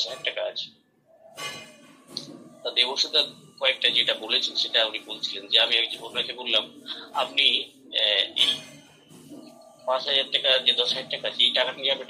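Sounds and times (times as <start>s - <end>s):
person speaking over video call: 0.0s - 0.7s, 2.7s - 8.6s, 9.8s - 12.0s.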